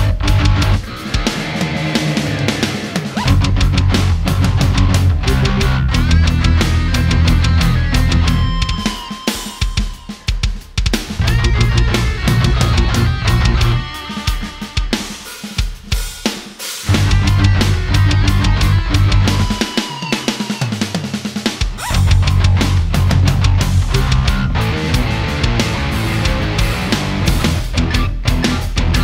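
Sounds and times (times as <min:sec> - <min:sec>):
bass guitar: 0:00.0 - 0:09.4, 0:10.9 - 0:15.2, 0:16.8 - 0:20.0, 0:21.1 - 0:29.0
electric guitar: 0:00.0 - 0:10.5, 0:11.1 - 0:15.4, 0:16.8 - 0:29.0
drum kit: 0:00.0 - 0:29.0
heavy progressive rock band: 0:00.0 - 0:29.0.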